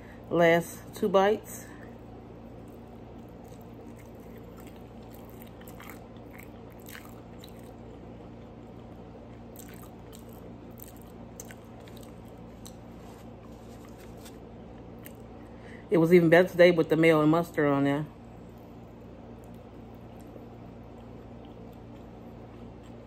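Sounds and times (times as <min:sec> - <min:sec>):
steady low hum: 0:00.0 - 0:23.0
person chewing food: 0:01.9 - 0:15.4, 0:18.5 - 0:23.0.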